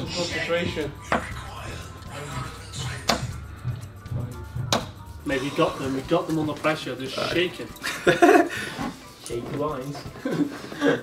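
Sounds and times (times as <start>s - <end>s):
background music with low beat: 0.0s - 11.0s
darts striking a dartboard: 4.7s - 5.0s.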